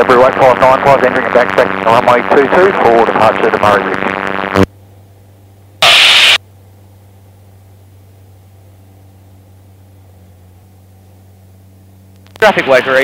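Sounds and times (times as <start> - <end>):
low intercom hum: 0.0 - 5.2
radio static burst: 0.1 - 4.7, 5.8 - 6.4.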